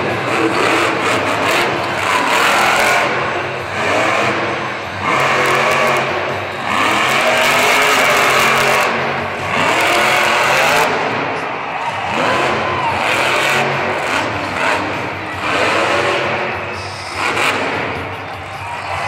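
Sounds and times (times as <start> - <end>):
monster truck engine revving: 0.0 - 19.0.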